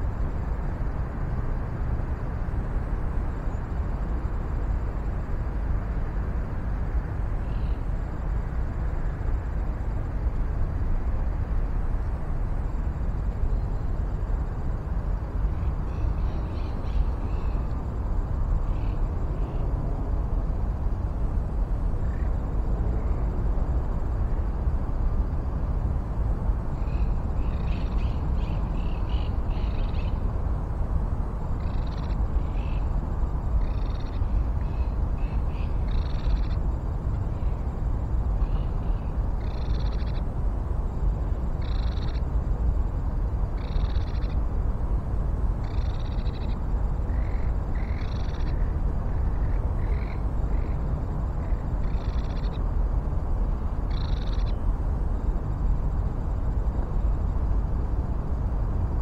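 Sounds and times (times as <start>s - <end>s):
steady low rumble: 0.0s - 59.0s.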